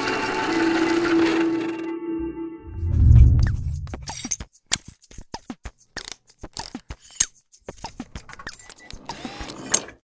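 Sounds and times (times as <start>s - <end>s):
rushing sound: 2.5s - 4.2s.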